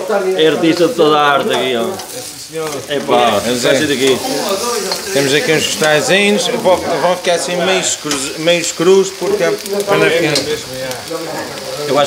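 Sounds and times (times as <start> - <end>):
vegetables sizzling in a wok: 0.0 - 12.0.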